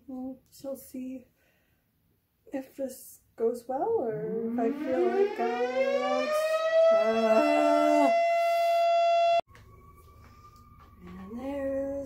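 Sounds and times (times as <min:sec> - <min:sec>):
siren steady pitch: 0:04.0 - 0:12.0.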